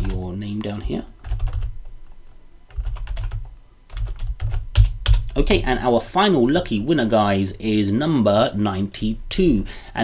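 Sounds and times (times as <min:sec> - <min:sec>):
computer keyboard typing: 0:00.0 - 0:00.2, 0:01.2 - 0:01.7, 0:02.7 - 0:05.4.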